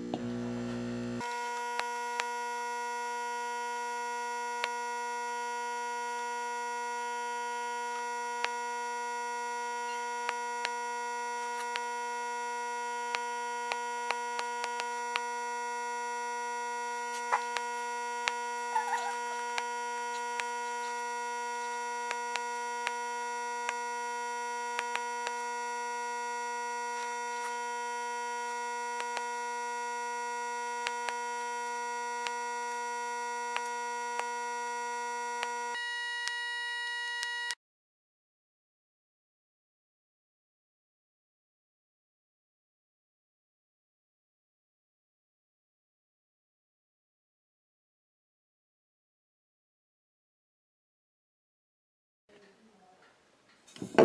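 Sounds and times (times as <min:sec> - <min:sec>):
electrical buzzing hum: 0:00.0 - 0:37.6, 0:53.8 - 0:54.0.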